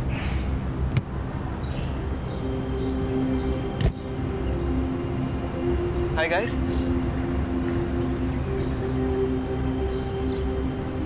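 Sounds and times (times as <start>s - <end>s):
soft background music: 0.0s - 11.0s
car door shutting: 3.8s - 4.0s.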